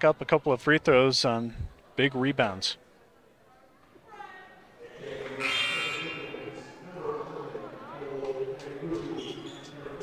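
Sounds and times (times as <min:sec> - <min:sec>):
hum of crowd voices: 0:00.0 - 0:10.0.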